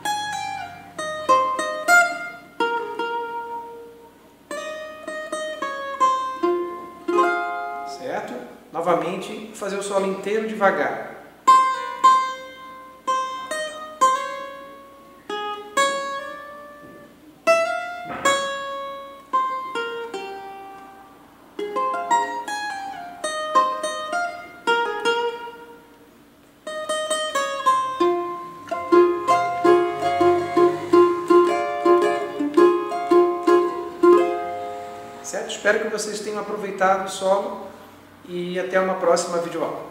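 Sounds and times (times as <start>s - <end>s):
cavaquinho plucked notes: 0.0s - 39.9s.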